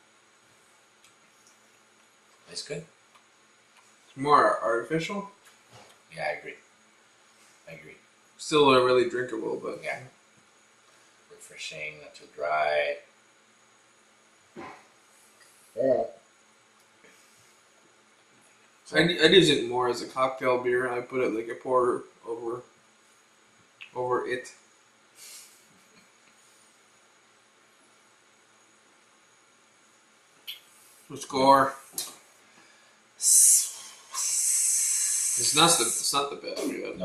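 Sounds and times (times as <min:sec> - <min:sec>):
steady faint hiss: 0:00.0 - 0:37.0
soft breathy noise: 0:32.3 - 0:36.0.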